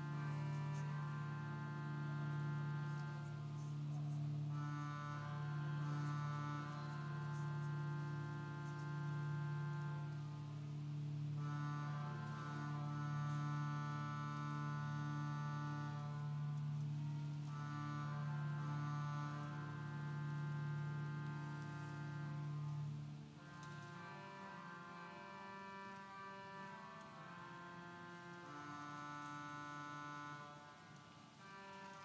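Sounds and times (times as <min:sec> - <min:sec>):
organ playing sustained chords: 0:00.0 - 0:32.0.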